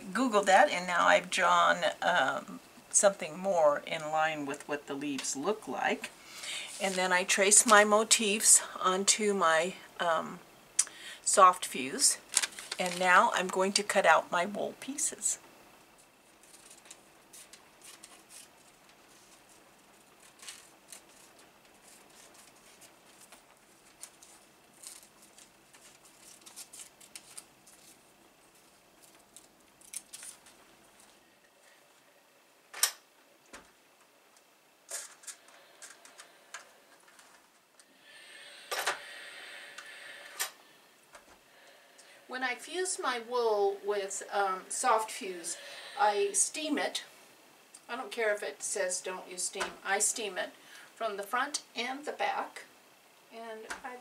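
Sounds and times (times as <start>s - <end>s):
steam iron hissing: 38.0s - 40.8s.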